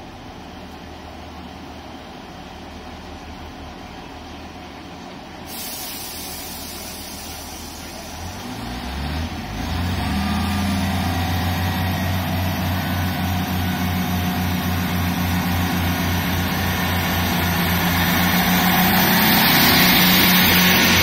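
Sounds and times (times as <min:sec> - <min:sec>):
diesel train engines throbbing: 0:00.0 - 0:21.0.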